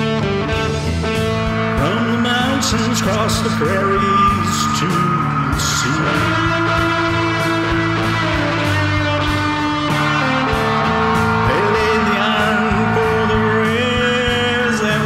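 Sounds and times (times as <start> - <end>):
rock song with guitar and singing: 0.0 - 15.0.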